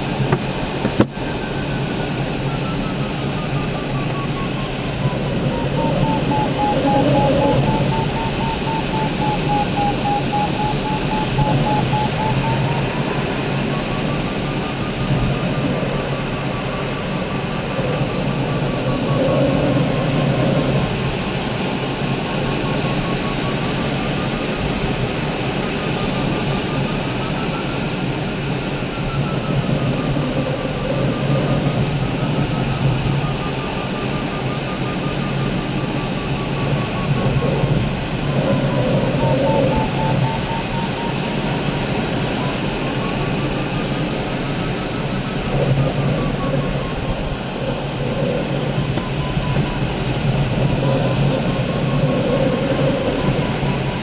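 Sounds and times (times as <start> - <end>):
variometer beeping rapidly: 0.0 - 54.0.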